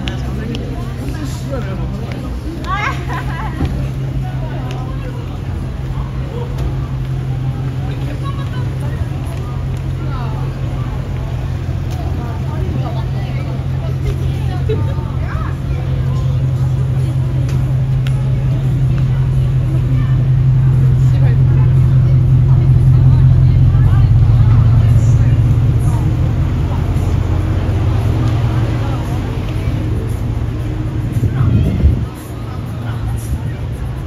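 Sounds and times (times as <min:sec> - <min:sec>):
idling cars humming: 0:00.0 - 0:34.0
passersby talking: 0:00.0 - 0:34.0.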